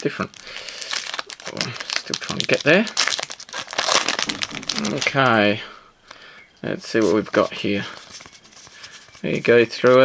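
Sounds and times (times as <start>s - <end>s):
foil wrapper crinkling: 0.0s - 5.4s.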